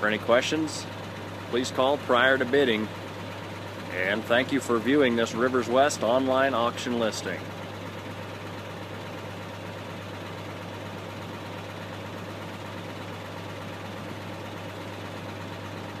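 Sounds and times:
diesel truck engine idling: 0.0 - 16.0.

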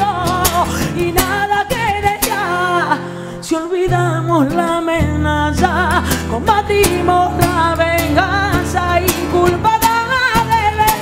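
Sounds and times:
strummed acoustic guitar: 0.0 - 11.0
woman singing with vibrato: 0.0 - 11.0.

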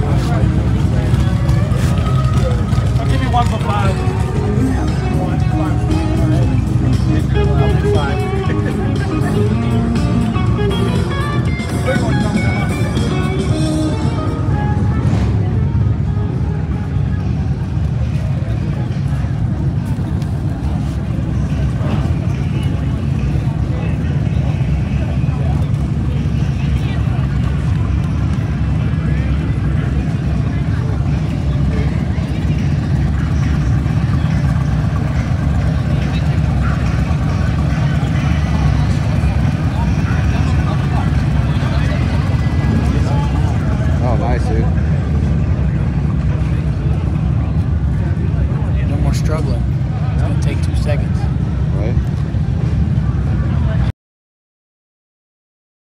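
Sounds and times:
motorcycle engines rumbling: 0.0 - 53.9
people chattering: 0.0 - 53.9.

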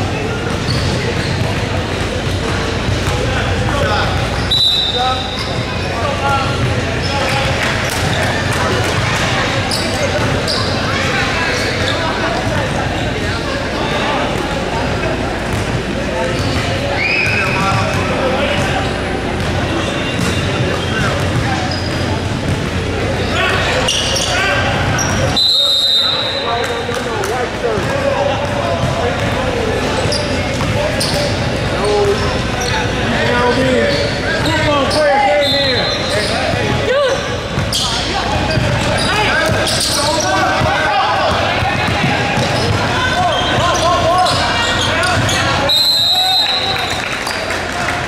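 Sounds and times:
referee's whistle blast: 4.4 - 5.5, 25.3 - 26.5, 45.6 - 47.0
basketball bouncing on court: 5.2 - 10.7, 15.5 - 23.1, 27.8 - 32.4, 37.5 - 45.6
players and spectators shouting: 22.8 - 48.0.

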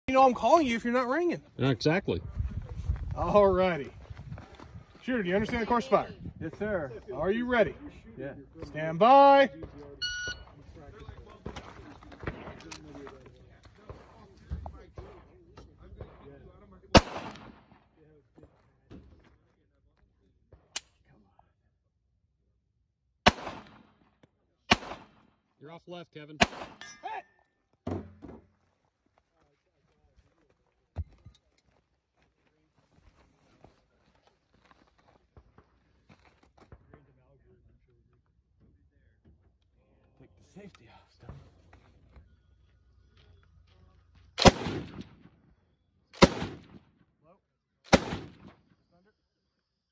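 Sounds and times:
shot timer beep: 10.0 - 10.5
loud rifle shot with echo: 17.0 - 17.8, 23.3 - 23.9, 24.7 - 25.2, 26.4 - 26.8, 44.4 - 45.0, 46.2 - 46.8, 47.9 - 48.5.

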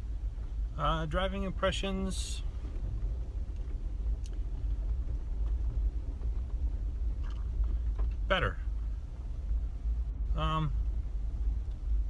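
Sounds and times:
vehicle rumbling on rough trail: 0.0 - 12.0.

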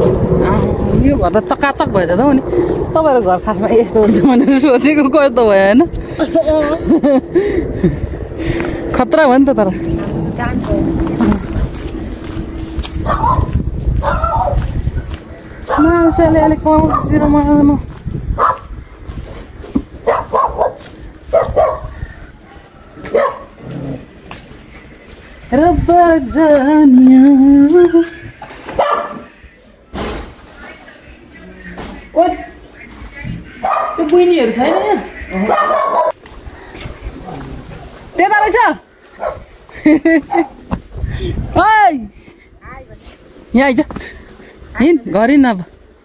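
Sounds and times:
dog barking: 13.0 - 14.7, 15.7 - 15.9, 16.9 - 17.2, 18.4 - 18.7, 20.0 - 21.9, 23.0 - 23.6, 28.8 - 29.2, 33.6 - 34.1, 34.7 - 36.2, 39.2 - 39.5.

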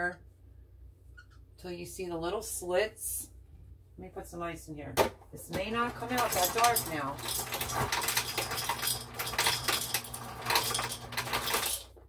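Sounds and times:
ice cubes clinking into a glass jar: 6.1 - 11.9.

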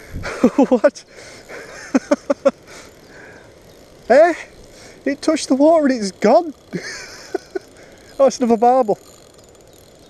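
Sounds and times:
man laughing: 0.2 - 2.9, 6.7 - 7.9.

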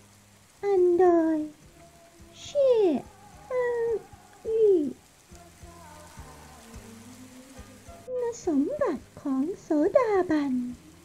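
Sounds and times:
person reciting slowly: 0.0 - 11.0
soft background music: 0.0 - 11.0.

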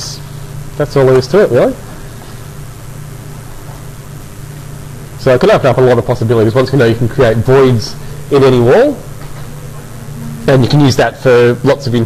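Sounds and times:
background hiss: 0.0 - 12.0
constant low hum: 0.0 - 12.0.

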